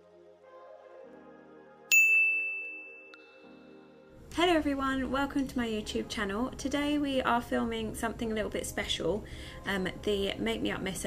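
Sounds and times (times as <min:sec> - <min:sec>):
soft intro music: 0:00.0 - 0:05.0
bright chime ding: 0:01.9 - 0:03.4.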